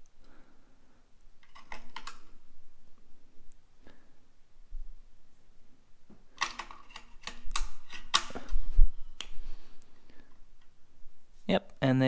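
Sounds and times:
batteries clicking into charger: 1.4 - 2.3.

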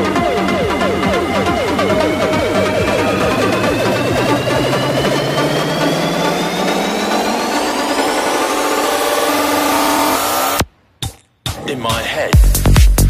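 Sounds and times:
psytrance music: 0.0 - 10.6, 11.5 - 13.0
rising synth sweep: 0.0 - 10.6.

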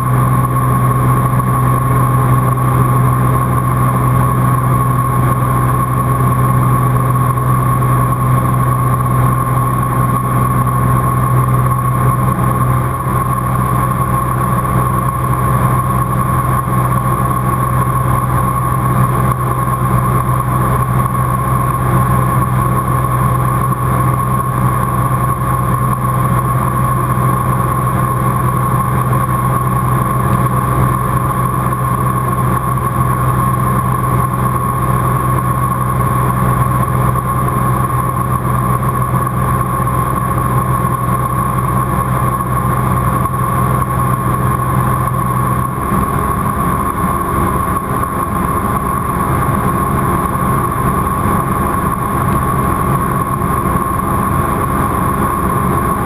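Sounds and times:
aircraft engine drone in cabin: 0.0 - 56.0
high whine: 0.0 - 56.0.

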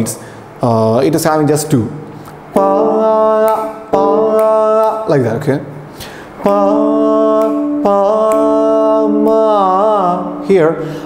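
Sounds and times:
man singing held notes: 2.5 - 5.6, 6.4 - 11.0.

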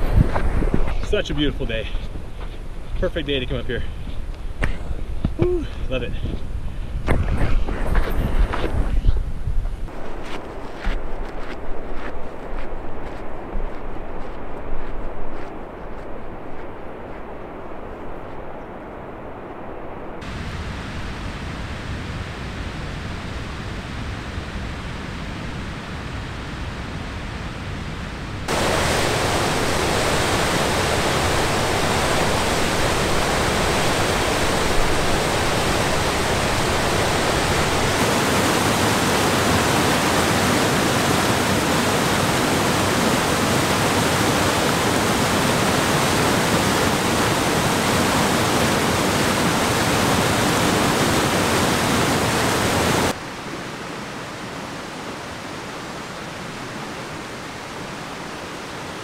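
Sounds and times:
creek rushing over boulders: 28.5 - 59.0.

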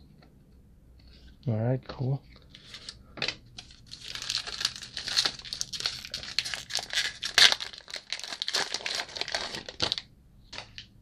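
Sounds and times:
plastic wrapper crinkling and tearing: 3.6 - 10.9.

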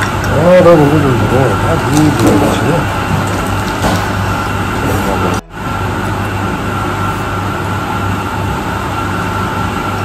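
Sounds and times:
cafe background noise: 0.0 - 7.6
constant low hum: 0.0 - 10.0.

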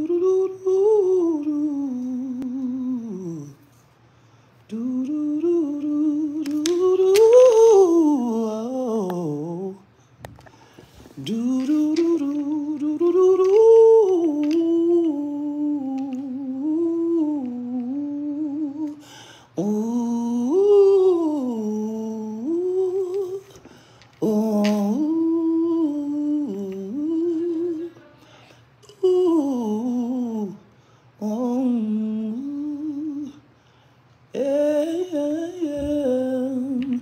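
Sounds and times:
man humming: 0.0 - 3.7, 4.7 - 9.9, 11.0 - 23.6, 24.2 - 28.2, 28.8 - 33.4, 34.3 - 37.0.

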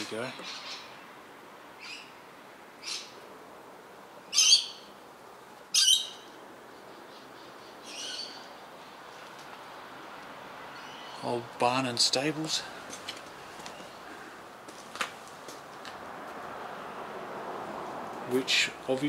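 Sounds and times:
bird calling: 0.0 - 1.2, 1.8 - 2.2, 2.8 - 3.2, 4.2 - 5.0, 5.7 - 9.4, 10.6 - 11.5, 12.6 - 14.5.

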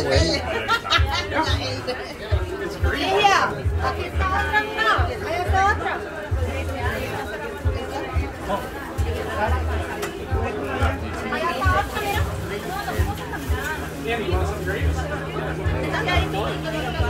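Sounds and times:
music with steady bass beat: 0.0 - 17.0
party chatter: 0.0 - 17.0.

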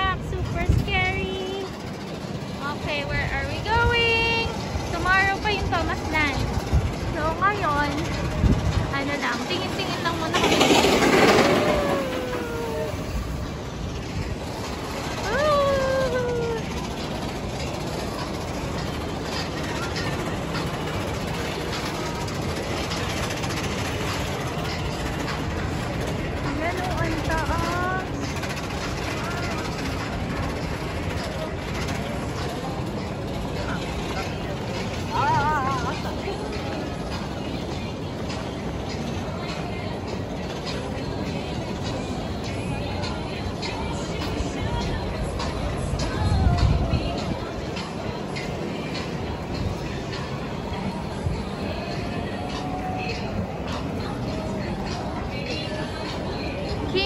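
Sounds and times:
crowd voices: 0.0 - 57.0
roller coaster running on track: 0.0 - 57.0
park music: 7.2 - 13.4, 31.2 - 57.0.

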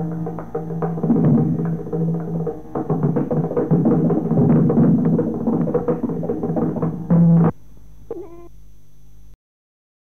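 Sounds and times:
recording hum and hiss: 0.0 - 9.4.

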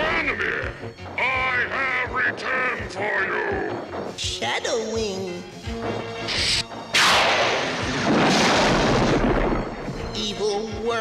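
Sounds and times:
background music: 0.0 - 11.0
cartoon blast with rumble: 7.0 - 9.7.

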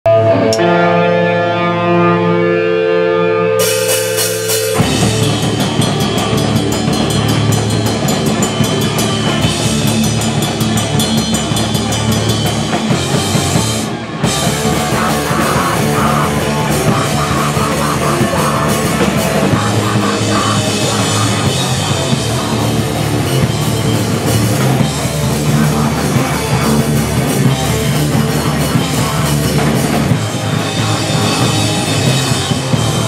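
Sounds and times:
bass: 0.0 - 33.0
distorted electric guitars: 0.0 - 33.0
fast dense drumming: 4.2 - 33.0.

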